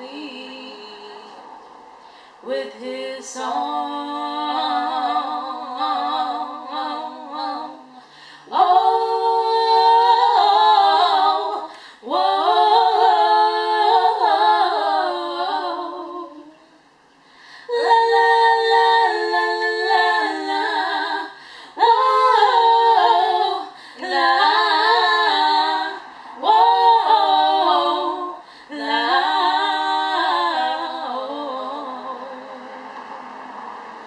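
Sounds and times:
women singing a cappella: 0:00.0 - 0:34.0.

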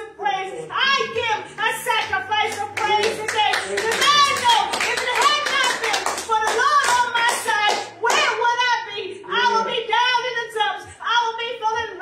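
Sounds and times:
woman speaking excitedly: 0:00.0 - 0:12.0
hand claps: 0:01.6 - 0:08.4.

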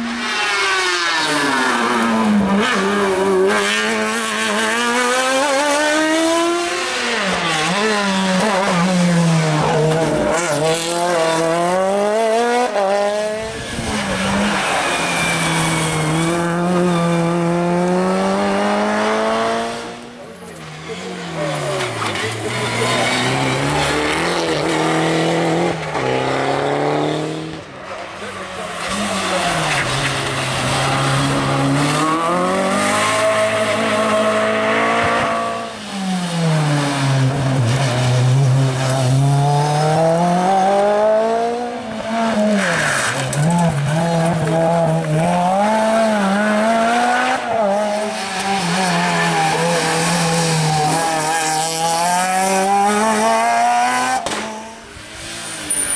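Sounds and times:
race car engines revving: 0:00.0 - 0:55.9.

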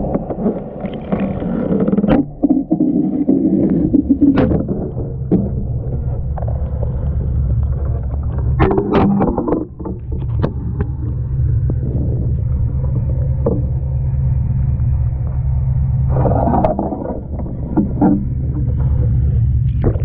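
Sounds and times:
boat engine rumbling: 0:00.0 - 0:20.0.

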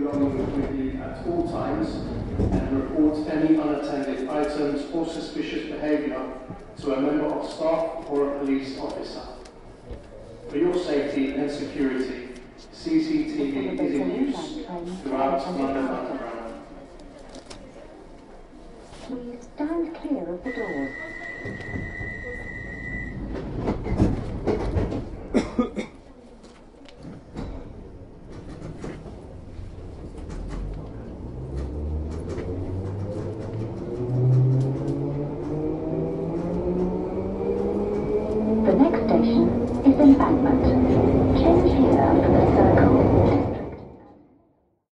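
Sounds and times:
train carriage rattling and knocking: 0:00.0 - 0:04.8, 0:21.0 - 0:25.8, 0:27.0 - 0:44.0
voices: 0:12.9 - 0:15.0, 0:36.8 - 0:43.6.

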